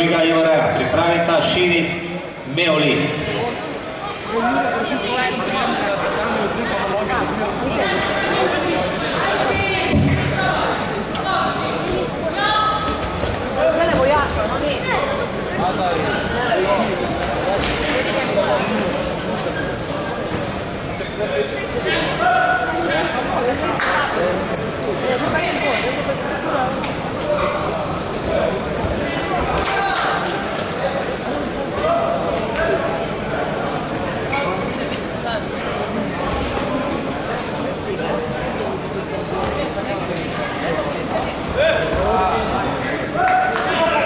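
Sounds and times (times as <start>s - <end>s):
crowd noise: 0.0s - 44.0s
voices chattering in echoing hall: 0.0s - 44.0s.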